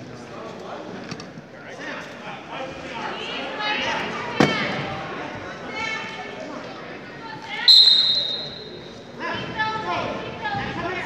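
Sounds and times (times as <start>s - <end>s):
referee's whistle blast: 7.7s - 8.9s.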